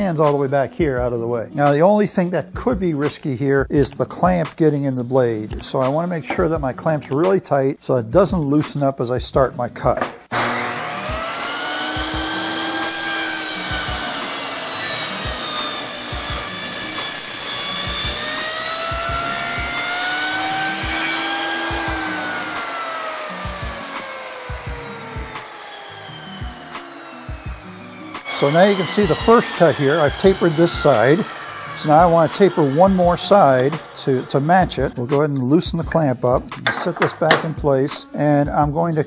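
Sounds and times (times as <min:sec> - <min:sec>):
saw blade spinning down: 0:10.3 - 0:35.3
table saw cutting wood: 0:10.3 - 0:37.8.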